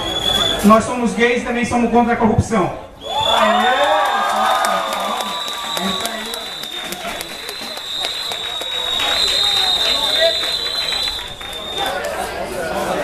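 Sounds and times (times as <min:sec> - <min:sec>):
audience cheering and clapping: 0:03.1 - 0:12.2.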